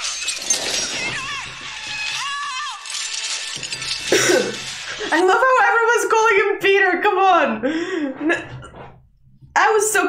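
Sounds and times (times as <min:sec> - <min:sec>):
crashing and shattering debris: 0:00.0 - 0:05.5.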